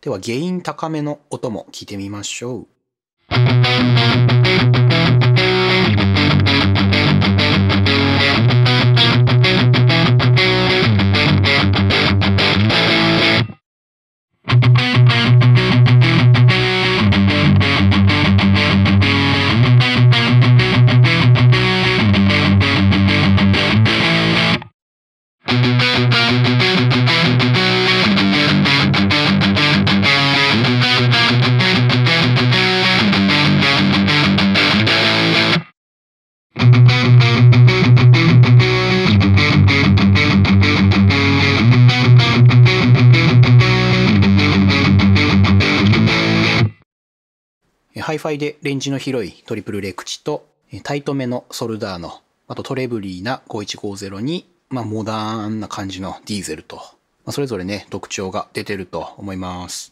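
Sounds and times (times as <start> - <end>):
distorted electric guitar riffs: 3.3 - 13.6, 14.4 - 24.7, 25.4 - 35.7, 36.6 - 46.8.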